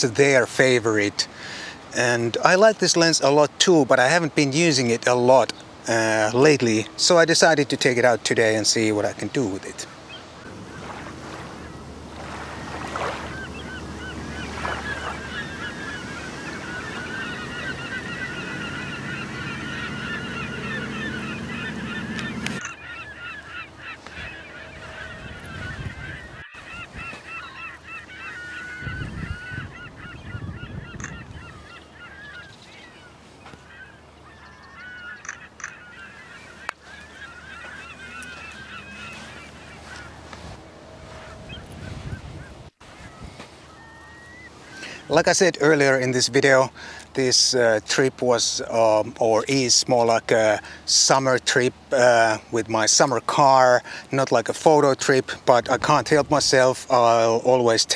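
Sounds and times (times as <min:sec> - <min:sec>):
birds calling: 0:00.0 - 0:57.9
wind: 0:00.0 - 0:57.9
lapping water: 0:10.5 - 0:22.6.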